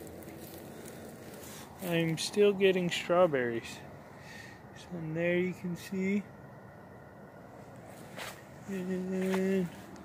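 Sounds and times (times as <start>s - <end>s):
faint background noise: 0.0s - 10.0s
man speaking: 1.8s - 4.0s, 4.8s - 6.3s, 8.6s - 9.8s.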